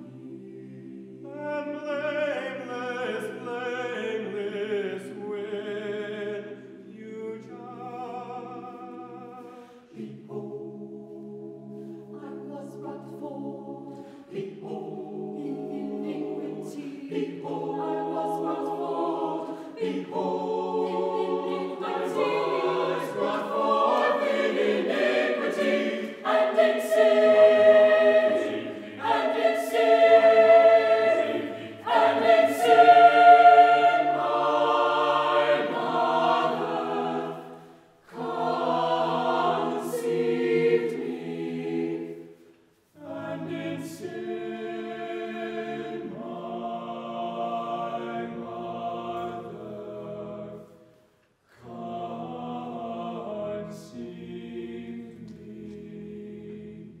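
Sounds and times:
mixed choir singing: 0:00.0 - 0:50.9, 0:51.6 - 0:57.0.

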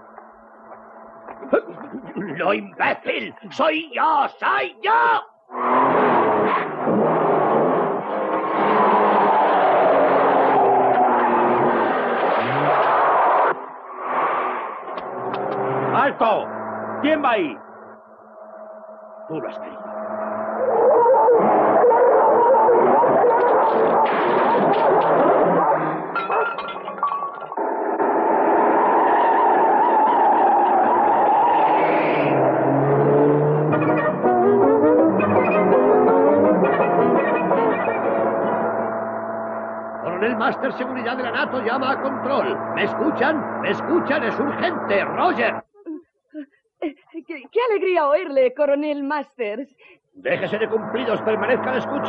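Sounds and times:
road noise: 0:00.0 - 0:45.6, 0:50.3 - 0:52.0
car engine revving: 0:05.4 - 0:26.3, 0:26.9 - 0:45.6, 0:50.3 - 0:52.0.

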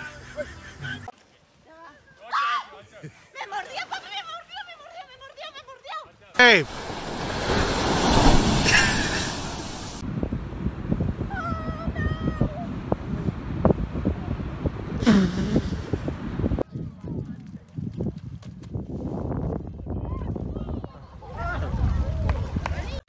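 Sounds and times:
wave breaking and surf: 0:06.4 - 0:16.6
wind on microphone: 0:06.7 - 0:23.0.

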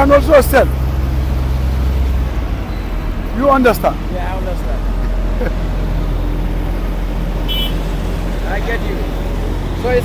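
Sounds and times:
road roller diesel engine humming: 0:00.0 - 0:10.0.

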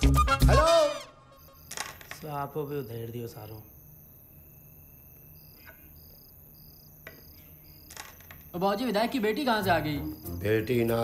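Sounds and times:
crickets chirping: 0:00.5 - 0:11.0.

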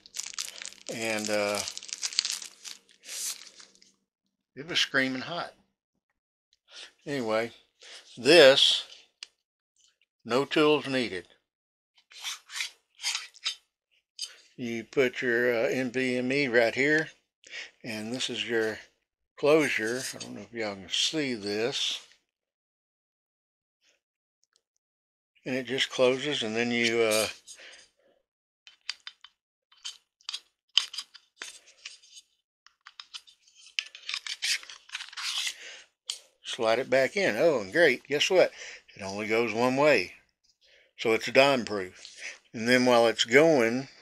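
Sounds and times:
plastic scraping and rubbing: 0:00.0 - 0:03.8, 0:29.8 - 0:36.2.

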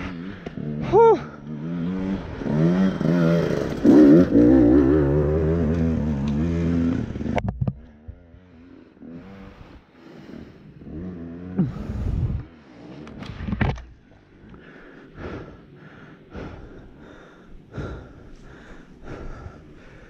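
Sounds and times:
dirt bike engine revving: 0:00.0 - 0:13.5
clicks and clatter over rocks: 0:13.0 - 0:14.0.

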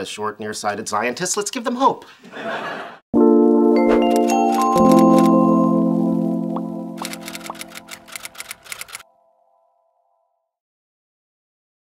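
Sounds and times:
music chord: 0:03.2 - 0:07.0.

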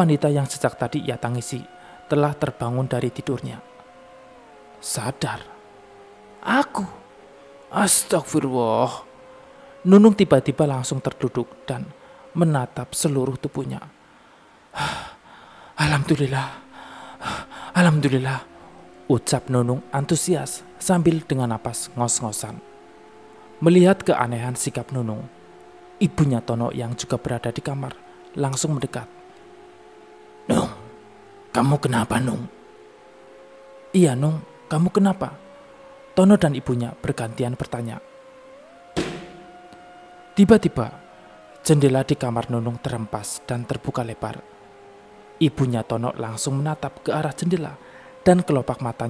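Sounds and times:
dark music of held tones: 0:00.0 - 0:49.0
person gasping: 0:14.2 - 0:15.7, 0:16.7 - 0:17.7
person speaking: 0:15.8 - 0:18.5
ringing impact hit: 0:39.0 - 0:39.7.

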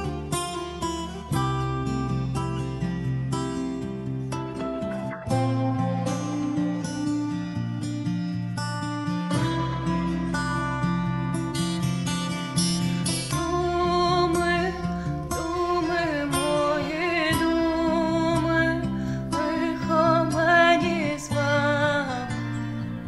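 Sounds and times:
plucked strings: 0:00.0 - 0:23.0
woman singing with vibrato: 0:13.3 - 0:22.8.

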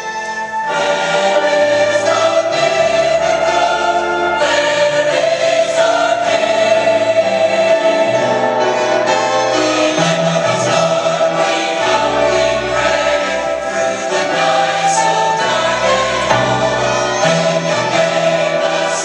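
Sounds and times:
church choir singing: 0:00.0 - 0:19.0
orchestral accompaniment: 0:00.0 - 0:19.0.

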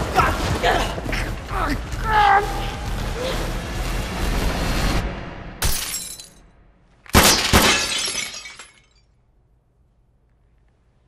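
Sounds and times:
rushing noise: 0:00.0 - 0:05.6
glass shattering and tinkling: 0:05.6 - 0:06.4, 0:07.2 - 0:09.1
loud cracks: 0:07.0 - 0:08.0.

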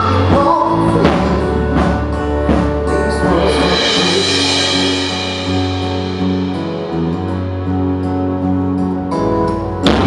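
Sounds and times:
live band playing pop ballad: 0:00.0 - 0:10.0
deep bass note: 0:00.8 - 0:10.0
drum hit: 0:01.1 - 0:07.8.

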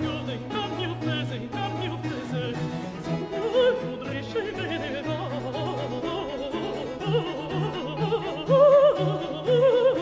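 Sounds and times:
alto voice singing: 0:00.0 - 0:10.0.

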